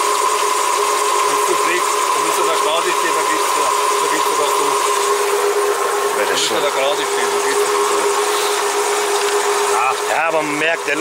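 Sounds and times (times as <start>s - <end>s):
car engine idling with whine: 0.0s - 11.0s.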